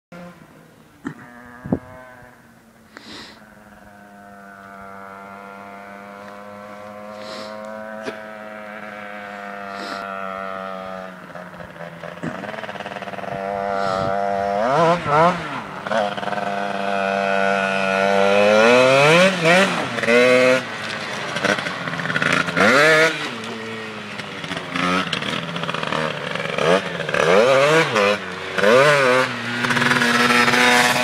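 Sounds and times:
motorcycle engine droning: 0:00.1 - 0:31.0.

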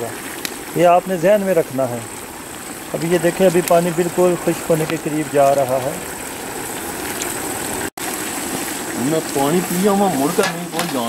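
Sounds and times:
pot boiling with bubbling hiss: 0:00.0 - 0:11.0.

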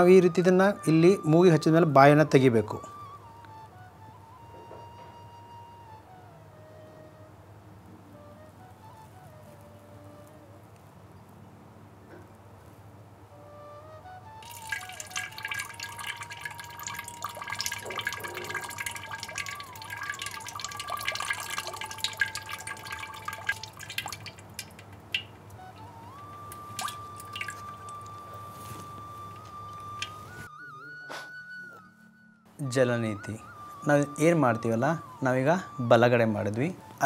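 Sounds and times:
slow melody over a drone: 0:02.9 - 0:10.8, 0:13.3 - 0:24.2, 0:25.4 - 0:32.6
water dripping and splashing: 0:14.4 - 0:30.5.

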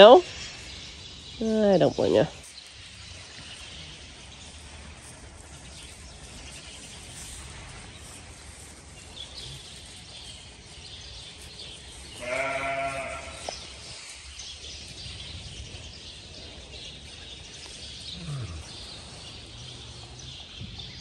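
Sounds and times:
sheep bleating: 0:12.2 - 0:13.5.

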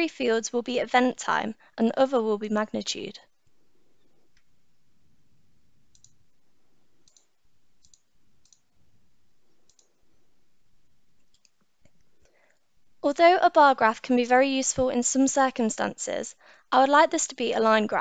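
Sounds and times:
computer mouse clicking: 0:05.9 - 0:06.3, 0:07.0 - 0:08.7, 0:09.5 - 0:10.0, 0:11.2 - 0:12.1.

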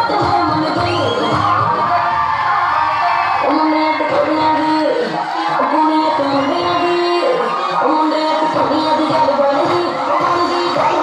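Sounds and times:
loud song with singing voice: 0:00.0 - 0:11.0.

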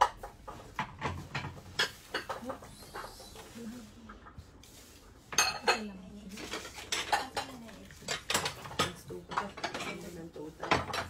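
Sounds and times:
ceramic bowls clinking: 0:00.0 - 0:03.5, 0:05.3 - 0:11.0.

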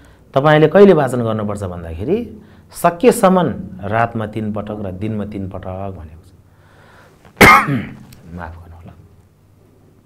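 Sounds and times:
man speaking: 0:00.4 - 0:06.4, 0:07.9 - 0:09.1
man coughing: 0:07.4 - 0:08.1.

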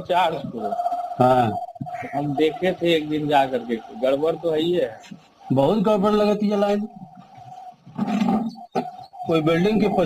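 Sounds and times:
thin steady tone: 0:00.0 - 0:10.0.

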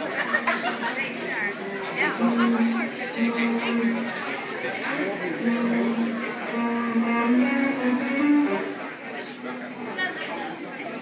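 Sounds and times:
audience chatter: 0:00.0 - 0:11.0
electric guitar held notes: 0:02.1 - 0:04.4, 0:05.2 - 0:08.9.

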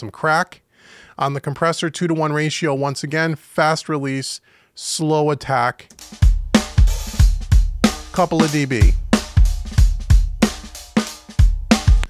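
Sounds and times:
drum kit groove: 0:05.9 - 0:12.0.

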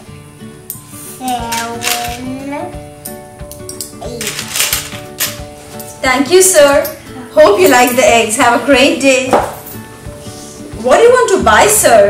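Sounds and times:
background music: 0:00.0 - 0:12.0
coins clinking in a tray: 0:01.5 - 0:02.3, 0:04.2 - 0:06.0.

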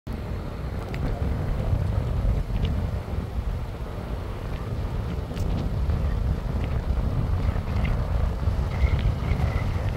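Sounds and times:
car driving on paved road: 0:00.1 - 0:09.9.

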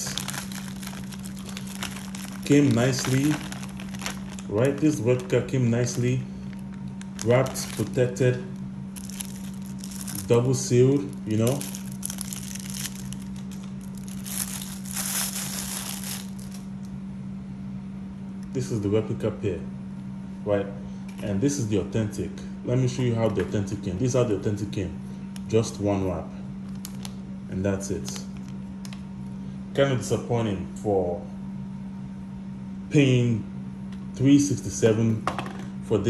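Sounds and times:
plastic bag crinkling: 0:00.0 - 0:08.2, 0:09.0 - 0:16.7
steady low hum: 0:00.0 - 0:36.0.

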